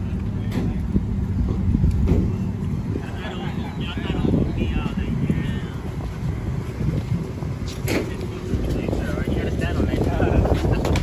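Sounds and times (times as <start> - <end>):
people talking: 0.0 - 1.1, 2.9 - 6.2, 7.6 - 11.0
wind rumble on microphone: 0.0 - 11.0.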